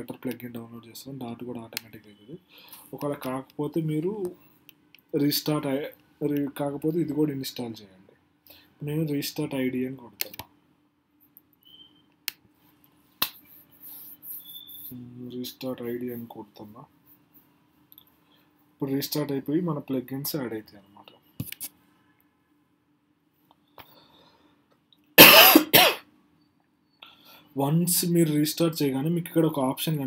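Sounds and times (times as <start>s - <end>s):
faint steady hum: 0.0s - 30.0s
computer mouse clicks: 10.2s - 10.5s
person coughing: 25.2s - 26.0s.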